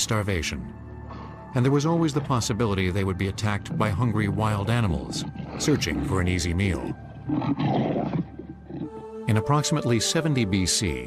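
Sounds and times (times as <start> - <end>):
wild animal call: 3.6 - 9.2.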